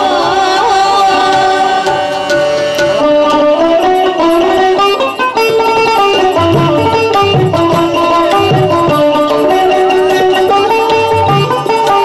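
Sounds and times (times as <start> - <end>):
woman singing: 0.0 - 2.4
hand drum: 0.0 - 12.0
harmonium: 0.0 - 12.0.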